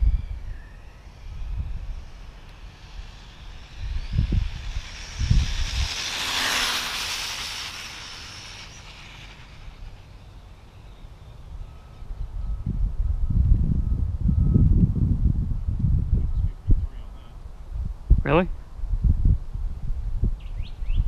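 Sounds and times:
wind rumble on microphone: 0:00.0 - 0:10.1, 0:11.4 - 0:21.0
rc car motor whining: 0:00.0 - 0:13.2.

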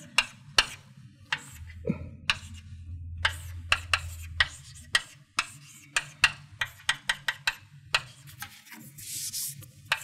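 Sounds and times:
chalk scraping: 0:00.0 - 0:10.0
chalk tapping and scratching on blackboard: 0:00.0 - 0:10.0.

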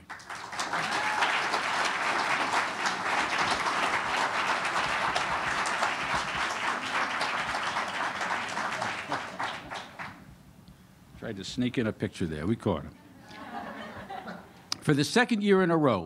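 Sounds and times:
audience applauding: 0:00.0 - 0:10.2.

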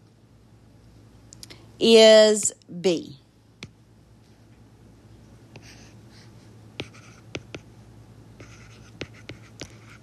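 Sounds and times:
stylus scratching on tablet screen: 0:05.6 - 0:07.7, 0:08.4 - 0:10.0.

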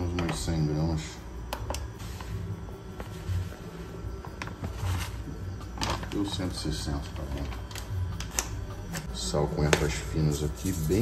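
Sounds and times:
low background music: 0:00.0 - 0:11.0
plastic bag rustling: 0:10.4 - 0:11.0.

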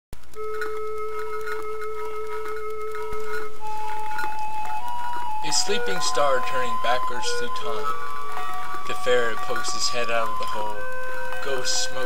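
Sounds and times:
flute playing held notes: 0:00.3 - 0:12.0.

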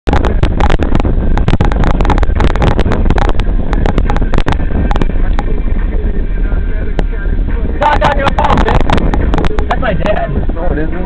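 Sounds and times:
car cabin rumble: 0:00.0 - 0:11.0
wind buffeting microphone: 0:00.0 - 0:11.0.

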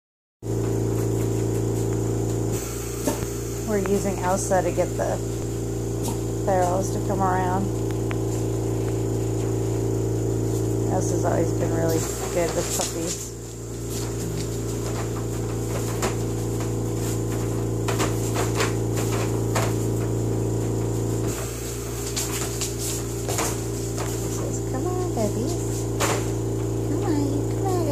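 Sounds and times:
household appliance humming: 0:00.4 - 0:27.9.

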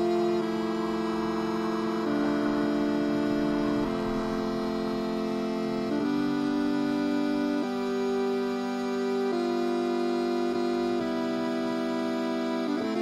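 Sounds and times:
synthesizer long held notes: 0:00.0 - 0:13.0.

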